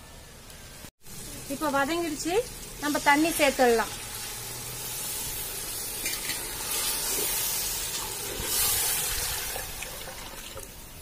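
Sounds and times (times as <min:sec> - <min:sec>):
curry sizzling and bubbling in pot: 0:00.2 - 0:11.0.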